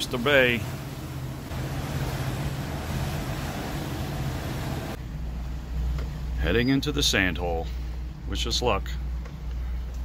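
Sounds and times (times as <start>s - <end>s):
rushing water: 0.0s - 5.0s
motorboat engine drone: 0.0s - 5.9s.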